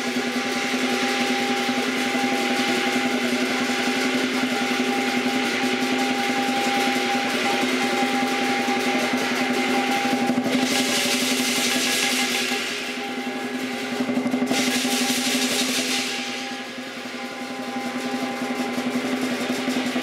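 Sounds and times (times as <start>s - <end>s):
cymbals ringing: 0.0s - 20.0s.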